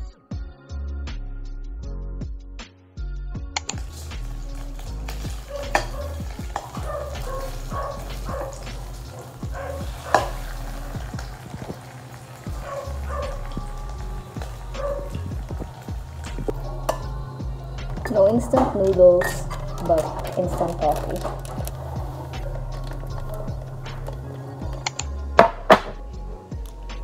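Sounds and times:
sharp clicks: 0:03.6 - 0:04.2, 0:24.8 - 0:25.1
meat sizzling in oil: 0:03.7 - 0:18.2.

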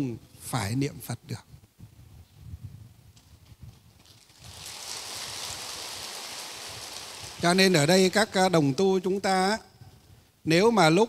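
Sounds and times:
high-pitched hiss: 0:04.4 - 0:10.1.

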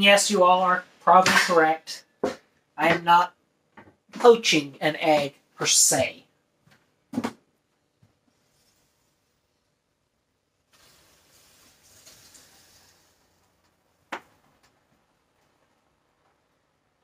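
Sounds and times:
hiss of steam and boiling water: 0:10.7 - 0:13.8.

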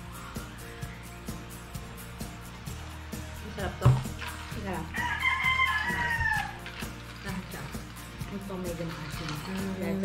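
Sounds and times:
background music with beat: 0:00.0 - 0:08.9.

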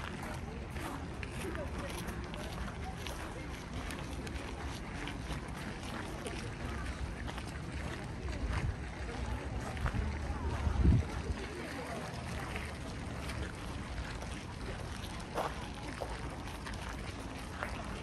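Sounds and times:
faint distant voices: 0:00.0 - 0:18.0
wind rumble on microphone: 0:06.6 - 0:15.2.

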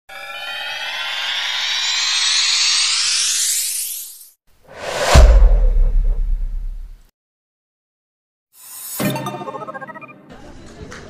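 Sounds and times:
electronic riser sweeping upward: 0:00.1 - 0:06.9
whoosh: 0:00.2 - 0:07.0
deep boom hit: 0:04.8 - 0:07.0.

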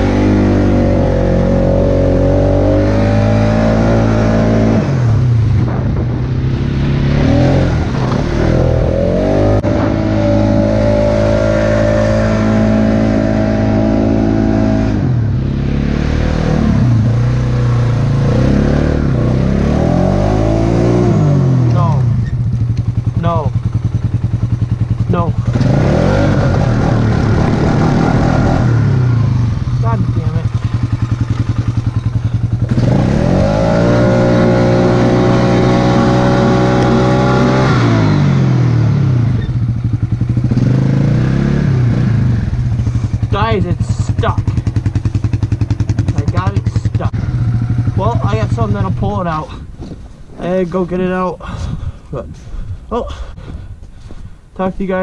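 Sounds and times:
quad bike engine revving: 0:00.0 - 0:49.8.

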